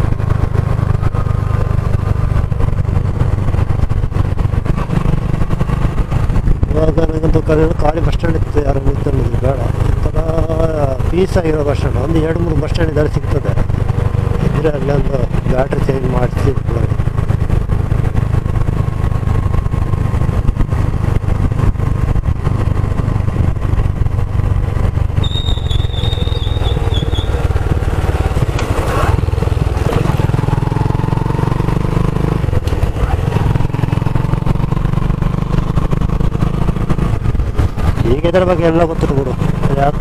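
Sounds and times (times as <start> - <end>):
wind and road noise rumble: 0.0 - 40.0
short high whistle: 25.2 - 27.3.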